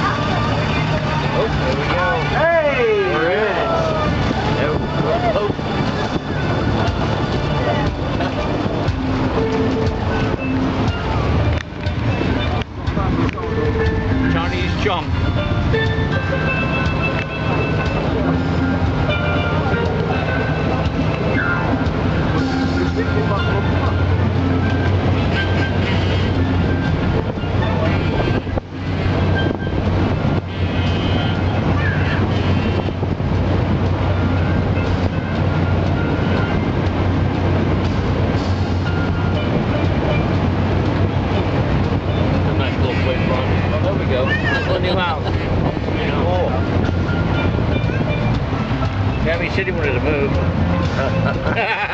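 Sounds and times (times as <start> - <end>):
boat engine droning: 0.0 - 51.9
voices: 0.0 - 51.9.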